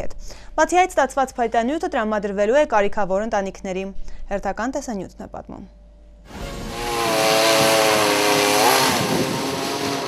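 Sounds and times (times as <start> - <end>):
chainsaw running at high revs: 6.3 - 10.0.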